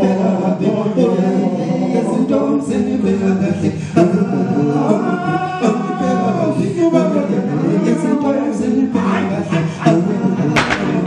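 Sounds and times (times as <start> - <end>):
men's vocal group singing: 0.0 - 11.0.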